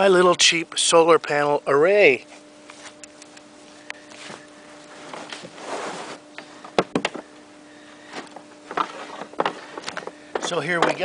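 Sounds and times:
steady low hum: 0.0 - 11.0
handling rustling and knocks: 4.2 - 7.3, 8.1 - 11.0.

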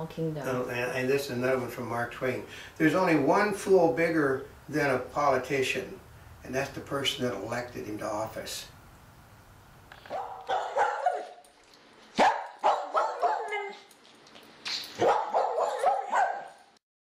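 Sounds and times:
dog barking and yipping: 10.1 - 11.5, 12.1 - 13.9, 14.9 - 16.7.

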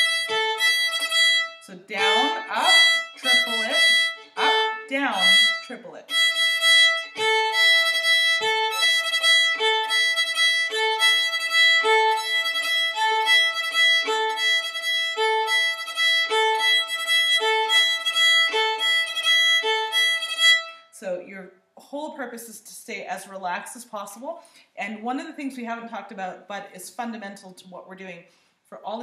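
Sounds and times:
fiddle bowing across two strings: 0.0 - 20.9.

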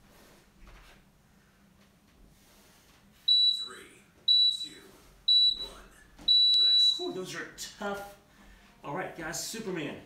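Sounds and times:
timer short high beeps: 3.3 - 7.1.

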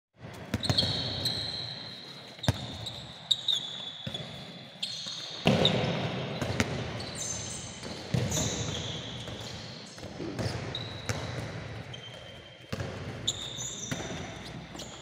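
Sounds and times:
ball bouncing on hall floor: 0.2 - 15.0
sneakers squeaking on court: 0.2 - 15.0.

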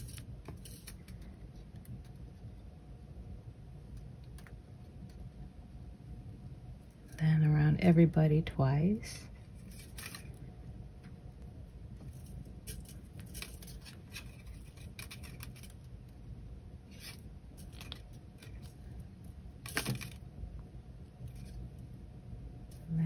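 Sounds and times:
low steady hum: 0.0 - 23.0
wire scratching on wire: 9.4 - 10.5, 12.0 - 16.0, 16.8 - 19.0.

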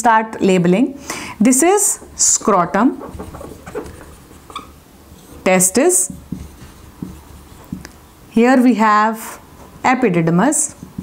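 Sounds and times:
marker scratching on whiteboard: 1.6 - 8.7, 10.6 - 11.0
marker squeak: 2.4 - 5.5.

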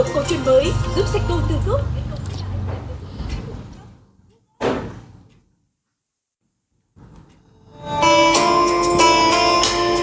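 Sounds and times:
sudden thump: 4.6 - 5.2.

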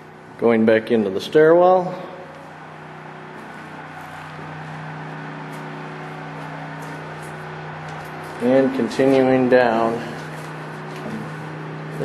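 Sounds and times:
generator humming: 0.0 - 12.0.

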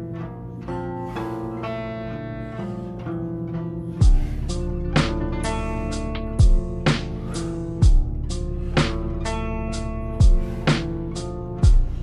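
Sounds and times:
instrumental music with bass: 0.0 - 12.0.

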